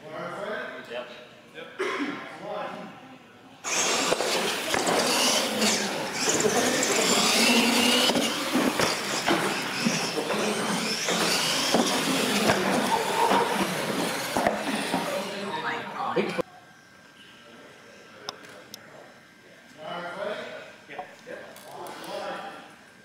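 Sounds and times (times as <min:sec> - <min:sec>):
crowd voices: 0:02.8 - 0:19.7
electric motors whining: 0:03.6 - 0:16.0.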